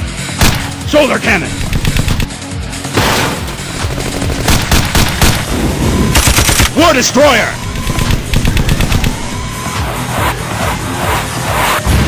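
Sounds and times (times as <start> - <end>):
machine-gun fire: 1.6 - 2.3, 3.9 - 5.5, 6.1 - 6.8, 7.8 - 9.3.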